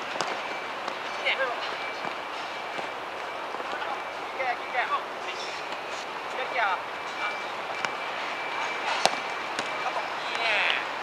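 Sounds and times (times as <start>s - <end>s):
outdoor background hum: 0.0s - 11.0s.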